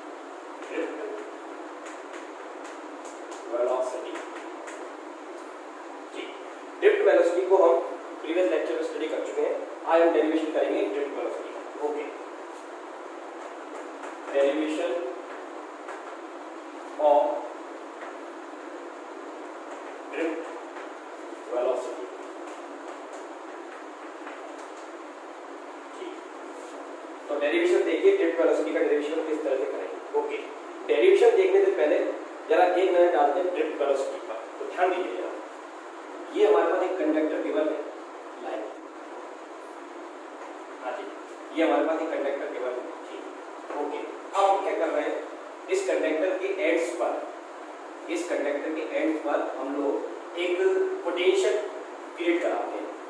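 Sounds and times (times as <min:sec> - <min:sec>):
background hiss: 0:00.0 - 0:53.0.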